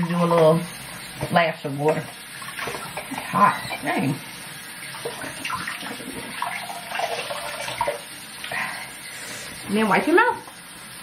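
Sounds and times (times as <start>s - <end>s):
water running from sink tap: 0.0s - 11.0s.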